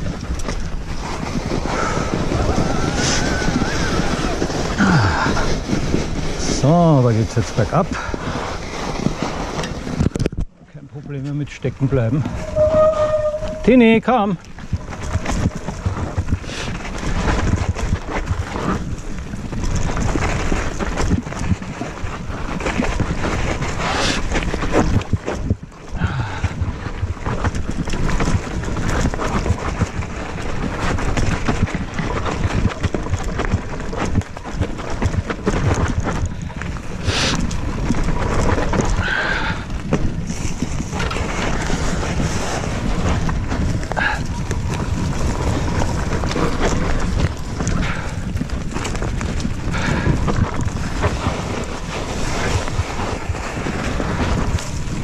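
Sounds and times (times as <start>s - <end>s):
bike rattling over dirt trail: 0.0s - 55.0s.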